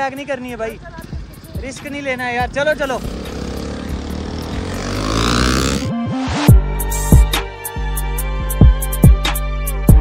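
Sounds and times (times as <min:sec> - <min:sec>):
motorcycle engine accelerating: 0:02.2 - 0:06.4.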